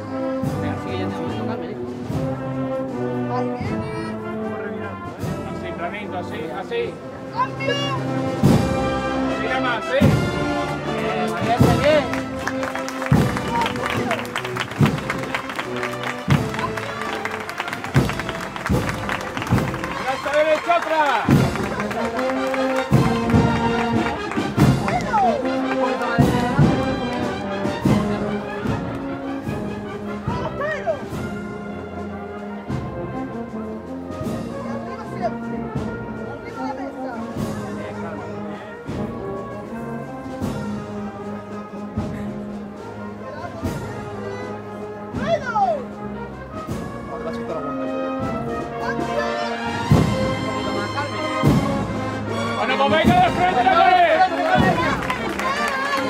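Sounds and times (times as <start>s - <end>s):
brass band march: 0.0s - 56.0s
steady drum strokes: 9.9s - 34.8s, 49.7s - 56.0s.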